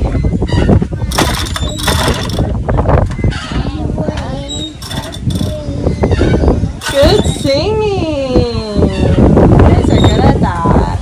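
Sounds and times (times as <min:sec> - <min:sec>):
wind buffeting microphone: 0:00.0 - 0:11.0
children's voices: 0:03.4 - 0:08.1.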